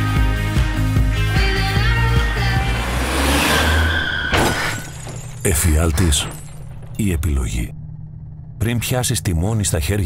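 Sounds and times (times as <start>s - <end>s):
background music: 0.0s - 4.2s
car driving past: 1.7s - 5.2s.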